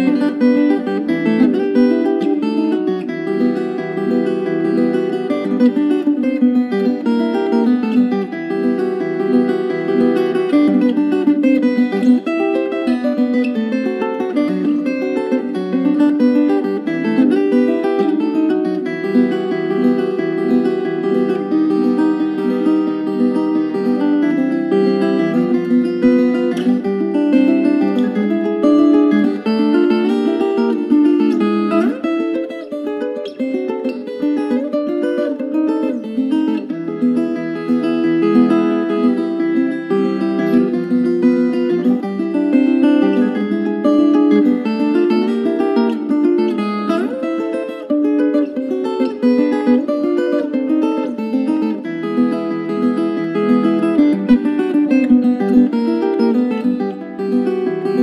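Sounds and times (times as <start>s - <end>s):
plucked guitar melody: 0.0s - 58.0s.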